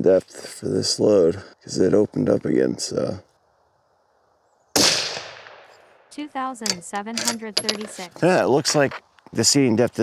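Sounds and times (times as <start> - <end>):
rifle shot with echo: 4.7 - 6.1.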